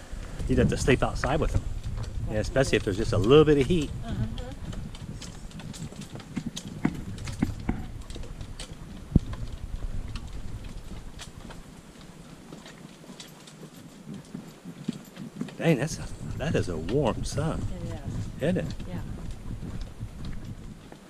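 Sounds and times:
footsteps on wooden boardwalk: 0:00.0 - 0:21.0.

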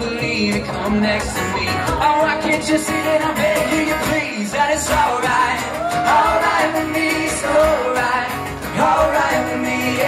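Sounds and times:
acoustic guitar strumming: 0:00.0 - 0:10.0
man singing into microphone: 0:00.0 - 0:10.0.

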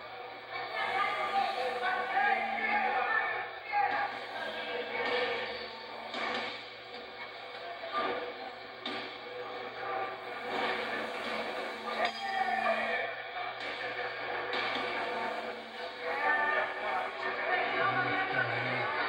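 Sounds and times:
indistinct voices: 0:00.0 - 0:19.0
music through television speaker: 0:00.0 - 0:19.0.

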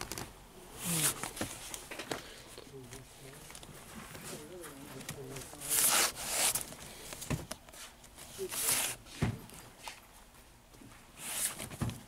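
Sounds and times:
people talking: 0:02.2 - 0:03.6, 0:04.2 - 0:06.1
record sleeves sliding and scraping: 0:11.2 - 0:11.8.

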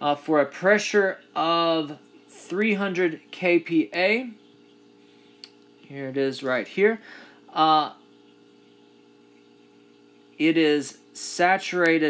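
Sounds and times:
faint hum with hiss: 0:00.0 - 0:12.0.

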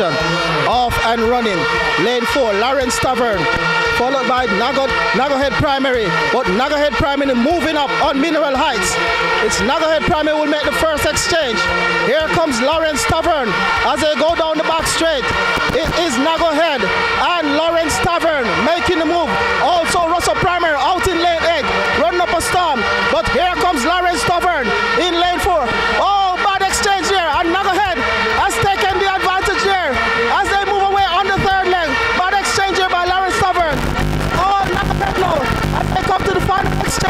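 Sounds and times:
commentator calling a race: 0:00.0 - 0:37.0
droning tones: 0:00.0 - 0:37.0.

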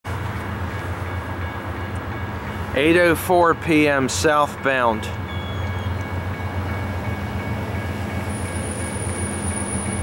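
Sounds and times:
diesel locomotive drone: 0:00.0 - 0:10.0.

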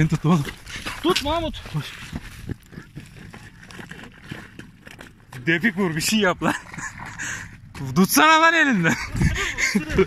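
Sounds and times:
wind rumble on microphone: 0:00.0 - 0:04.8, 0:08.8 - 0:10.0.

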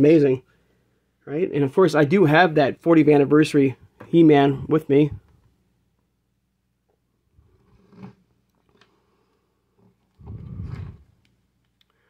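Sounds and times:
hands rubbing microphone: 0:09.8 - 0:11.4.

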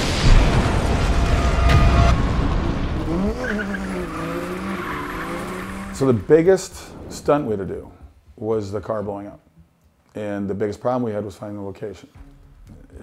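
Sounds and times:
explosion blast: 0:00.0 - 0:05.4.

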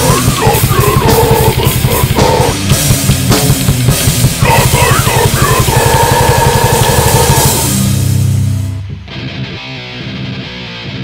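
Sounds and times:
fast bass-drum strokes: 0:00.0 - 0:08.8
death metal music: 0:00.0 - 0:11.0
distorted guitars: 0:00.0 - 0:11.0.

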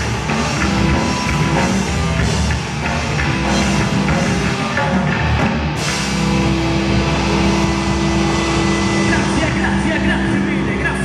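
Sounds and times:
electric guitar and bass droning: 0:00.0 - 0:11.0.

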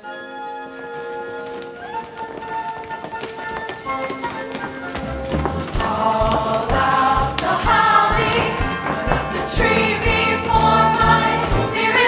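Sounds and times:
shoes tapping on stage floor: 0:00.8 - 0:12.0
choir singing held chords: 0:05.4 - 0:12.0.

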